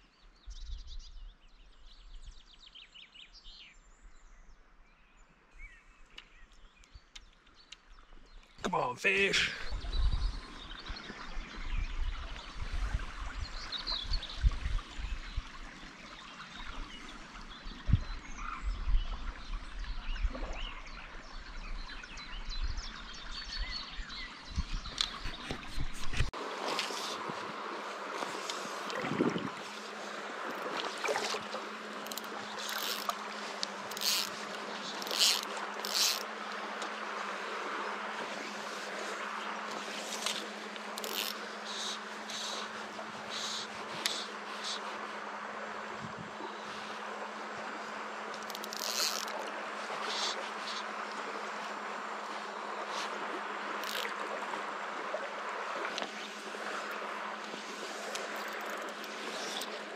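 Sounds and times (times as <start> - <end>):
river flowing water: 5.3 - 18.5, 19.1 - 59.9
wind buffeting microphone: 9.6 - 15.6, 17.7 - 20.7, 21.7 - 26.4, 29.0 - 29.7, 45.9 - 46.4.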